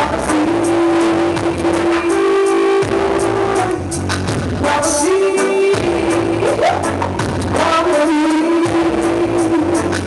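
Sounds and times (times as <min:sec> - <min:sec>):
live band music: 0:00.0 - 0:10.0.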